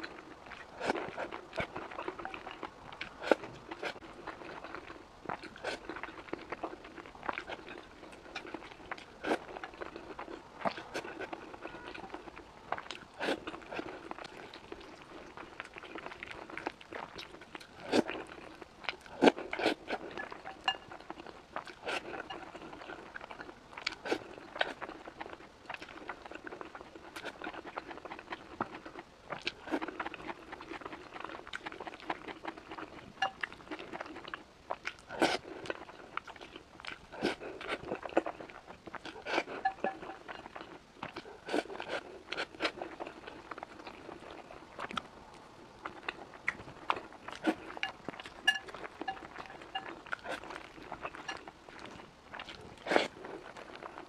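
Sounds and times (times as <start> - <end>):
person chewing crunchy food: 0.0 - 54.0.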